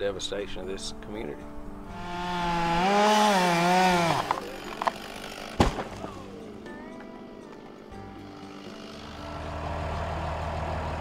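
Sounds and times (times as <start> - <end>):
chainsaw cutting tree trunk: 1.9 - 6.5, 8.2 - 11.0
sharp thump: 5.6 - 6.1.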